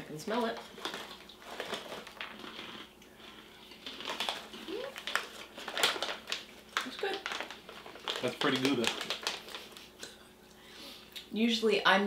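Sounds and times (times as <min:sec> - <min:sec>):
foil snack pouch crinkling: 0:00.5 - 0:10.1.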